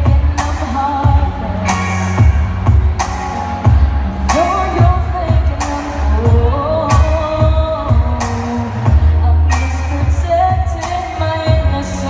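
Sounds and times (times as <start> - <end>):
backing track with bass and drums: 0.0 - 12.0
woman singing into a microphone: 0.0 - 12.0.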